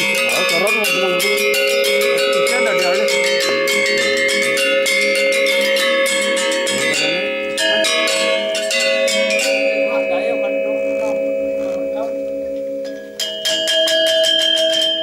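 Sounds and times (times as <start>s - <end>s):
gamelan metallophones playing: 0.0s - 15.0s.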